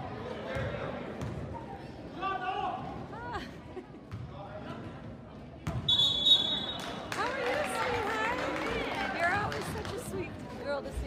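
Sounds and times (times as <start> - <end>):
referee's whistle: 5.8 - 6.8.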